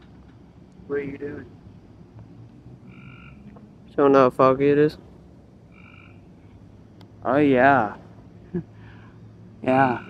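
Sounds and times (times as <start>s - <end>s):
low steady hum: 0.0s - 10.0s
frog calling: 2.8s - 3.9s, 5.6s - 7.9s, 8.8s - 10.0s.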